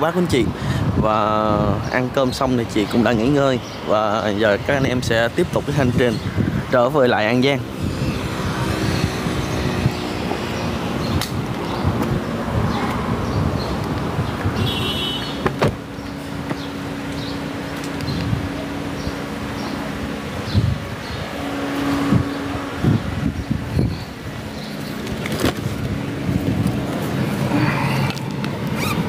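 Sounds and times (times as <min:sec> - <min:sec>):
car and road rumble: 0:00.0 - 0:29.0
car door knocks: 0:14.9 - 0:15.8.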